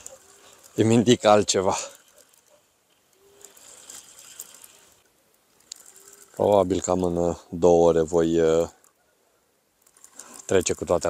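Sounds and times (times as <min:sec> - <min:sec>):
fishing reel clicking whir: 0:03.1 - 0:06.6.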